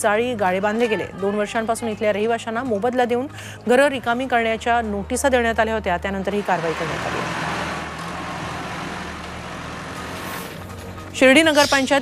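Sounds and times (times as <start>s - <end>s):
diesel engine running: 6.4s - 11.0s.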